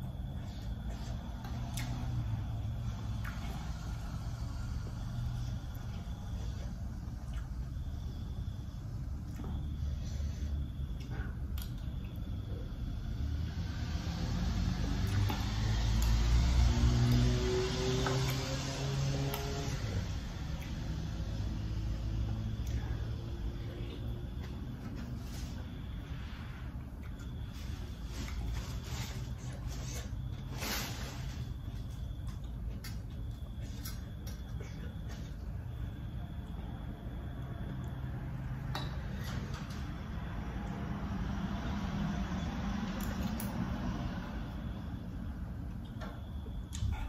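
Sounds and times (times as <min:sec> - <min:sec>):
steady low hum: 0:00.0 - 0:47.0
passing road vehicle rumble: 0:00.4 - 0:10.8, 0:12.7 - 0:32.2, 0:36.0 - 0:47.0.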